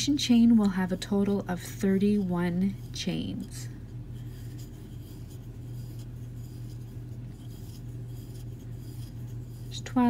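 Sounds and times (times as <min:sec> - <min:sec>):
low steady hum: 0:00.0 - 0:10.0
yarn scratching and rustling: 0:00.0 - 0:10.0.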